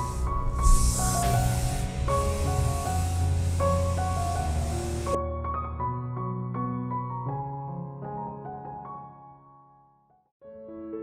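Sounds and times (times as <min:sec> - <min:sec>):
aerosol spray can hissing: 0:00.0 - 0:05.2
instrumental background music: 0:00.0 - 0:09.3.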